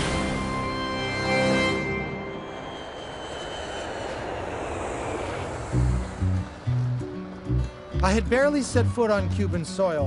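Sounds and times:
jet engines climbing: 0.0 - 10.0.

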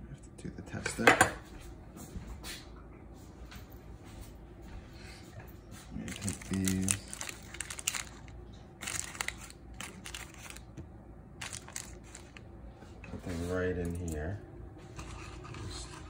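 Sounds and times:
aluminium foil crinkling: 6.0 - 10.8, 11.4 - 12.5.

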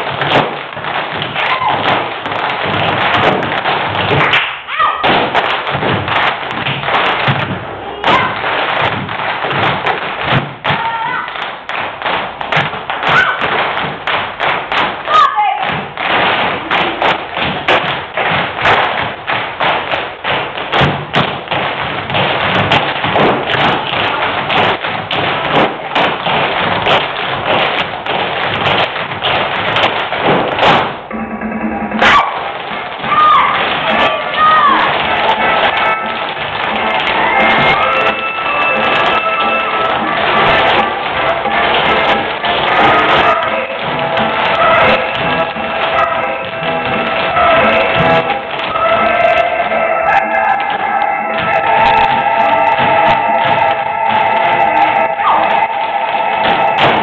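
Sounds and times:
tap shoes on stage floor: 0.0 - 31.1, 32.0 - 57.0
accompanying music: 30.8 - 57.0.

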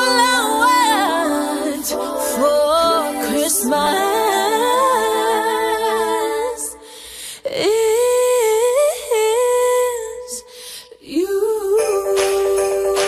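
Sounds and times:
women singing a cappella: 0.0 - 13.0.

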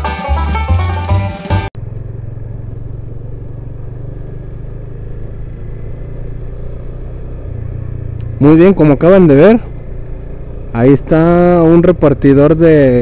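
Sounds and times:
banjo tune: 0.0 - 1.7
motorcycle engine running: 0.0 - 13.0.

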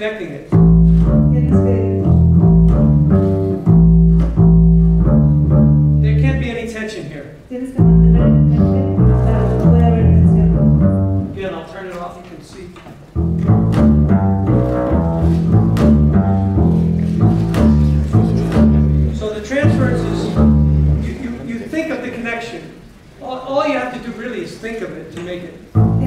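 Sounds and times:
double bass plucked notes: 0.5 - 6.5, 7.7 - 11.5, 13.1 - 21.4, 25.7 - 26.0.

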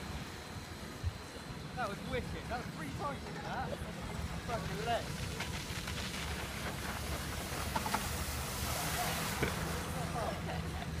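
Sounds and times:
outdoor rumble and hiss: 0.0 - 11.0.

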